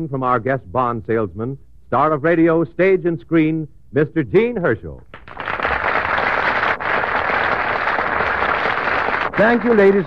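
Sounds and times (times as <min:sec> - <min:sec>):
audience applauding: 0:05.1 - 0:10.0.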